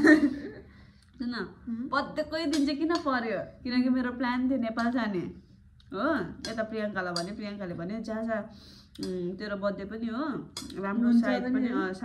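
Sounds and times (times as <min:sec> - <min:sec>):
woman talking: 0:09.0 - 0:12.0.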